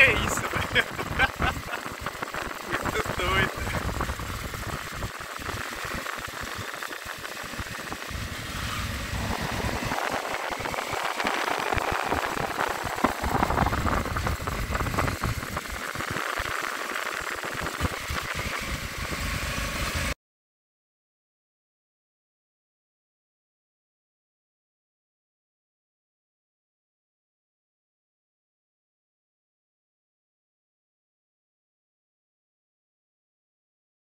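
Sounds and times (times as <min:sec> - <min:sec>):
motorcycle engine running: 0:00.0 - 0:20.2.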